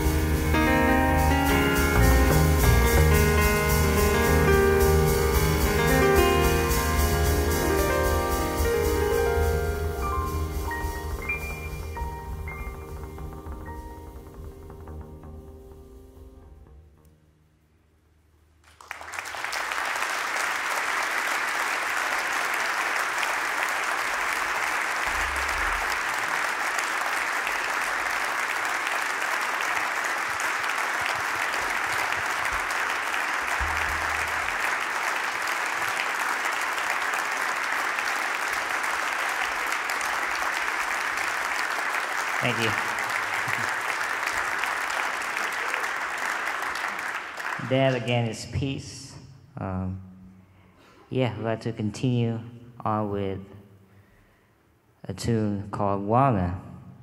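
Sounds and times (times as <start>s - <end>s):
audience applauding: 18.6s - 48.3s.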